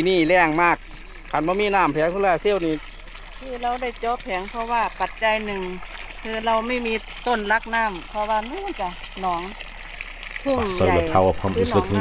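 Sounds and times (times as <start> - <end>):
water splashing from a pipe: 0.0 - 12.0
person talking: 10.5 - 12.0.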